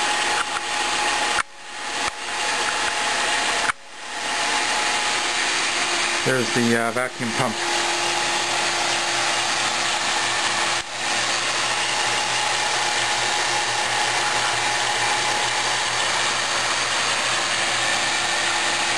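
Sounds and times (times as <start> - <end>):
vacuum pump running: 0.0 - 18.9.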